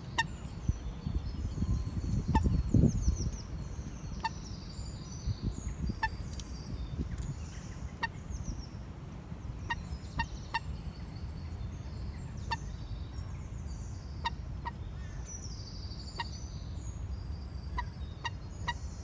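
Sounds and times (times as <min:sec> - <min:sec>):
songbirds trilling: 0:00.0 - 0:19.0.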